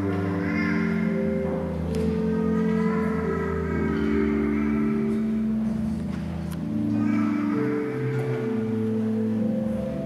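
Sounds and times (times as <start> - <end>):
church organ playing chords: 0.0 - 10.0.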